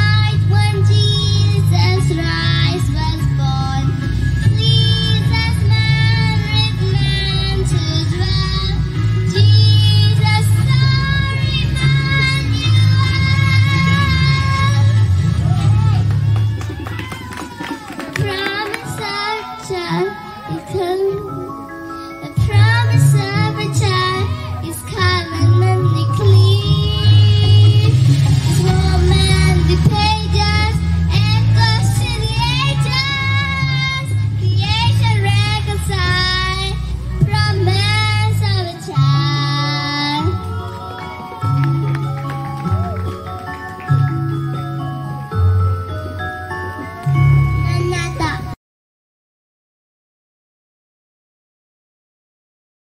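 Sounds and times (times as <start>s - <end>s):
girl singing into a microphone: 0.0s - 15.1s, 18.1s - 41.8s, 46.9s - 48.6s
musical accompaniment with bass line: 0.0s - 48.6s.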